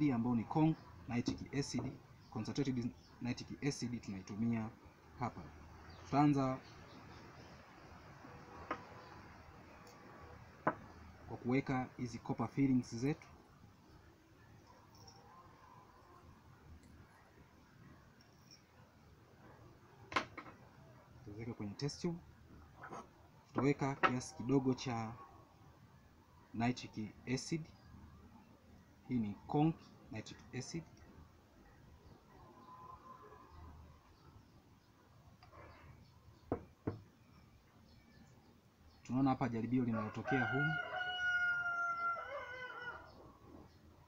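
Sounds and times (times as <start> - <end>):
rooster crowing: 40.0 - 43.4.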